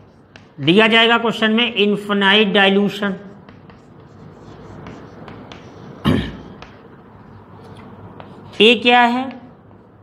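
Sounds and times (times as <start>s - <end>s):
chalk tapping: 0.0s - 1.2s, 3.0s - 7.0s, 7.7s - 9.5s
chalk scratching on blackboard: 3.3s - 6.0s.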